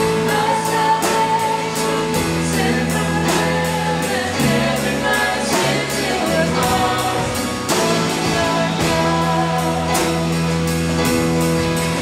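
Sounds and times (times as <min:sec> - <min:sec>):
voices singing together: 0:00.0 - 0:11.1
acoustic guitar: 0:00.0 - 0:12.0
keyboard: 0:00.0 - 0:12.0.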